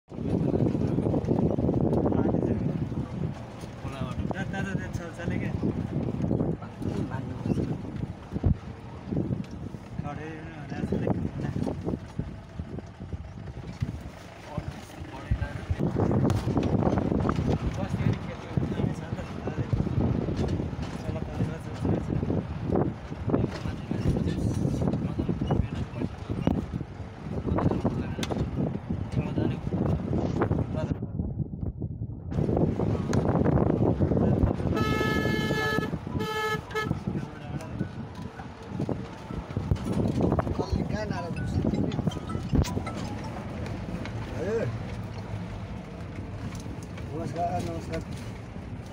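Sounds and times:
engine and road rumble: 0.0s - 48.9s
vehicle horn honking: 34.6s - 37.2s.

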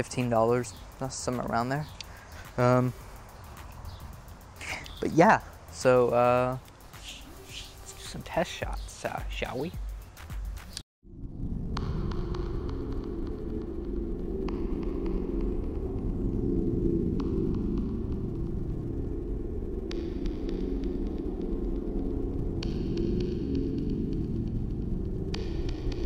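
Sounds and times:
faint hiss: 0.0s - 9.7s
low throbbing hum: 0.0s - 26.0s.

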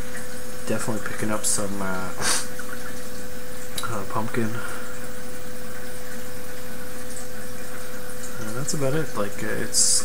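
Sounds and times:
mid-pitched hum: 0.0s - 10.0s.

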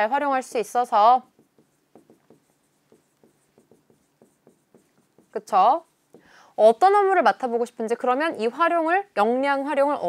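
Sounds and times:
marker pen writing on board: 1.2s - 6.4s.

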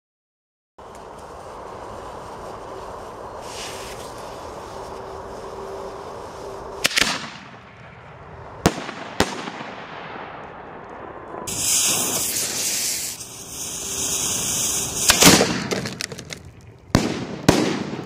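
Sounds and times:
firework shell hiss: 0.8s - 7.5s, 11.5s - 16.5s
steady background noise: 0.8s - 18.0s
firework bangs: 6.8s - 18.0s.

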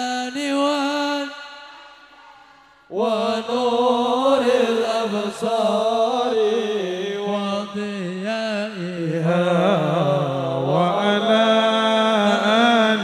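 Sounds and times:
voices chanting ornamented melody: 0.0s - 13.0s.

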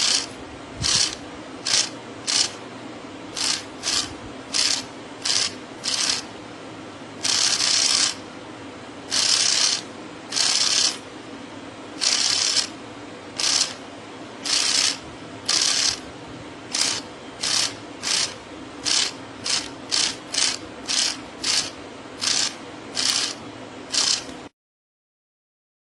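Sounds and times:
small electric motor running: 0.0s - 2.6s, 3.3s - 6.3s, 7.2s - 8.2s, 9.1s - 11.0s, 12.0s - 12.8s, 13.4s - 13.8s, 14.4s - 16.0s, 16.7s - 24.4s.

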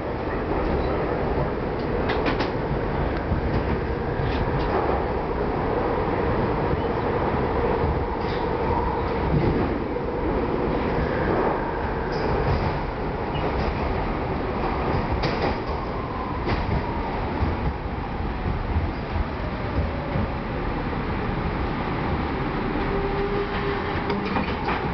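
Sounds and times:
train rumble: 0.0s - 24.9s
wheels clicking over rail joints: 24.0s - 24.9s.

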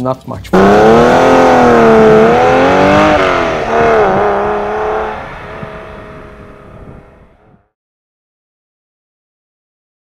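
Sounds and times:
car engine pulling away: 0.5s - 7.6s.

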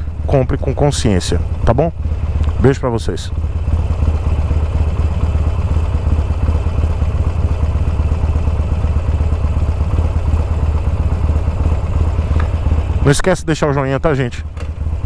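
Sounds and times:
motorcycle engine idling: 0.0s - 15.0s.

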